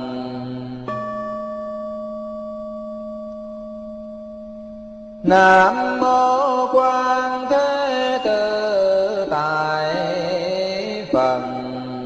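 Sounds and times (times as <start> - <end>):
bowl bell ringing: 0.9 - 5.3.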